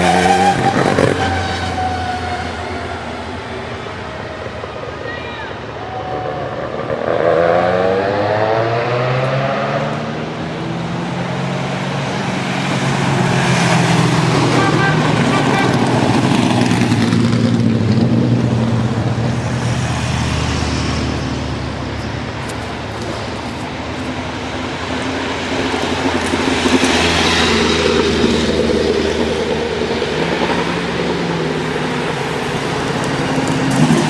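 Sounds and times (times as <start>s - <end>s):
race car approaching: 0.0s - 34.0s
race car engine revving past: 6.1s - 21.9s.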